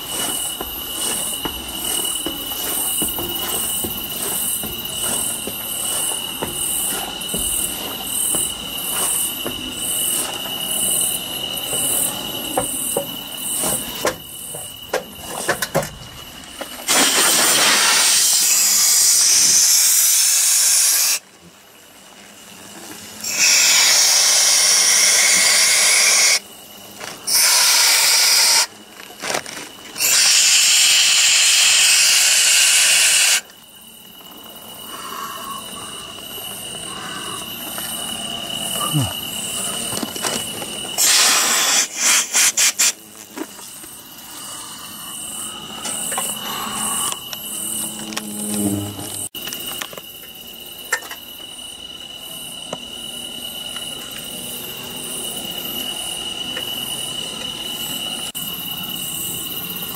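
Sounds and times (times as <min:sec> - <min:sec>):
insects chirping: 0:00.0 - 0:59.9.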